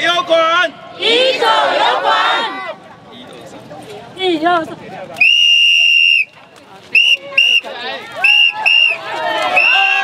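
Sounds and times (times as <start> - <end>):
whistle blast: 5.2 - 6.4, 7.0 - 9.0.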